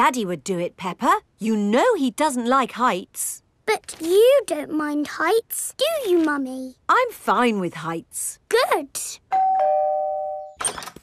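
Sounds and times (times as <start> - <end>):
two-note doorbell chime: 9.3 - 10.6.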